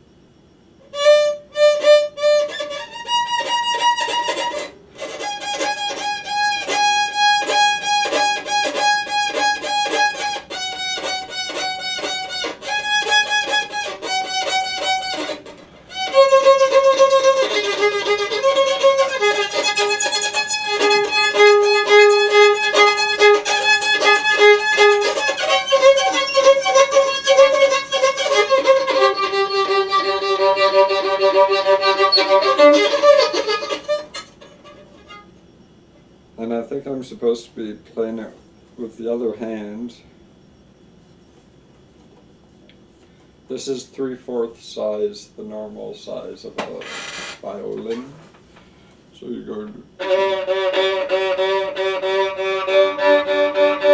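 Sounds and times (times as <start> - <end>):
violin bowed in long notes: 1.0 - 35.3, 50.0 - 53.9.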